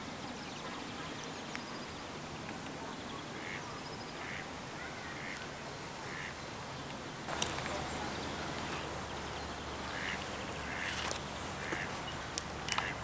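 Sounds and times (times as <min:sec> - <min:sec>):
outdoor background hiss: 0:00.0 - 0:13.0
ducks quacking: 0:03.3 - 0:06.4, 0:07.4 - 0:13.0.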